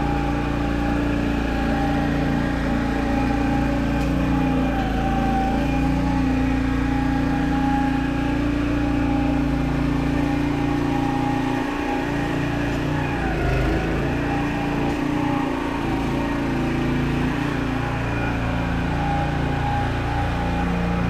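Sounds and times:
lawn roller engine droning: 0.0 - 21.0.

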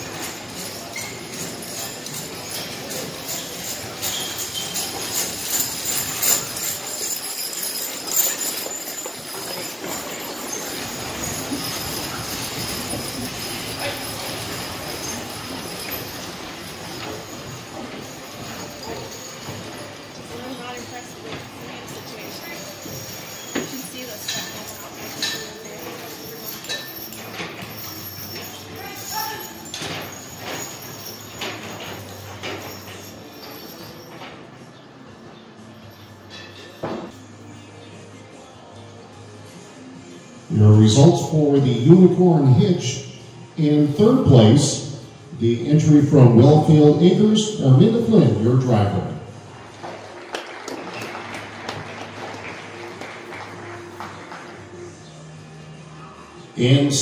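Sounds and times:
indistinct voices: 0.0 - 34.4
hooves knocking: 0.0 - 34.5
harness clinks: 0.0 - 38.0, 40.6 - 57.0
quiet background music: 0.0 - 57.0
scattered applause: 49.7 - 54.7.

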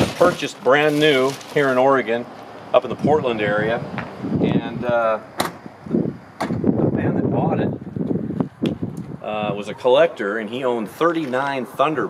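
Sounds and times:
car trunk lid latching clicks: 5.4 - 5.6.

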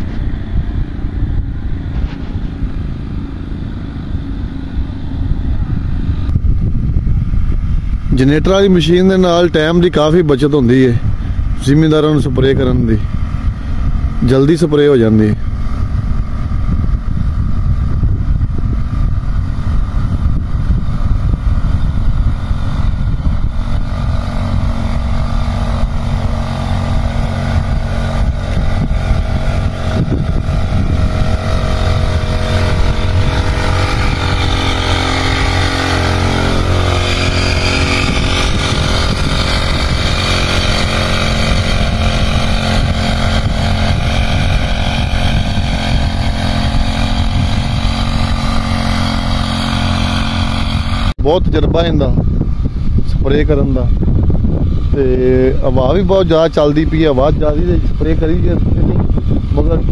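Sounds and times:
backpack power sprayer engine: 0.0 - 59.9.

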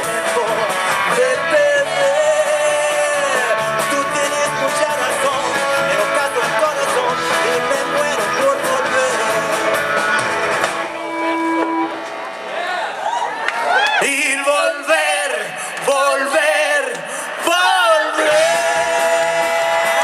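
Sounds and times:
punk rock band playing: 0.0 - 12.0, 15.6 - 20.0.

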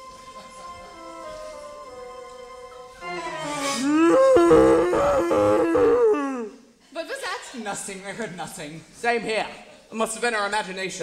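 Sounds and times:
man groaning wavering: 3.7 - 6.6.

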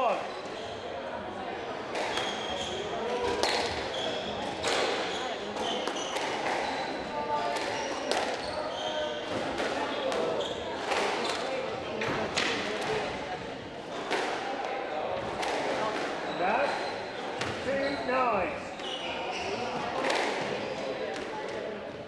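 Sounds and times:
squash ball hitting rackets and walls: 1.9 - 13.1, 14.0 - 17.7, 19.4 - 21.3
shoes squeaking on wooden floor: 18.8 - 19.9.

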